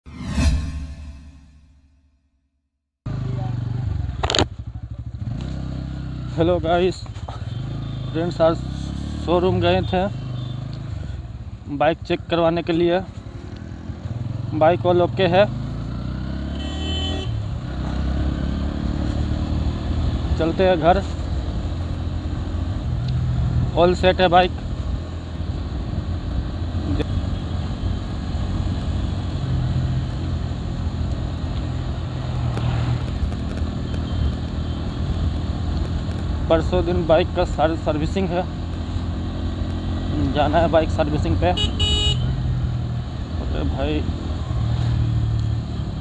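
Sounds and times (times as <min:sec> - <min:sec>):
loud hit sound effect: 0:00.0 - 0:02.3
wind and road noise: 0:03.1 - 0:46.0.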